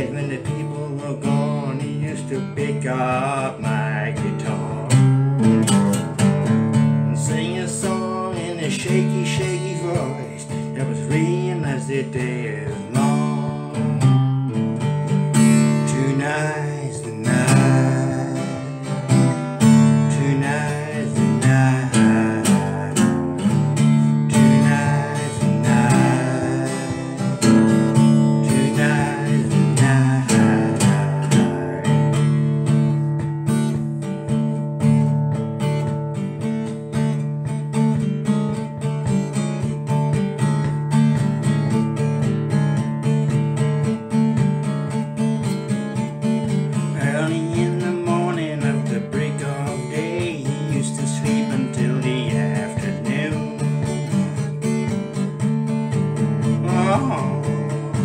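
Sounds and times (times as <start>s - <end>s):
strummed acoustic guitar: 0.0s - 58.0s.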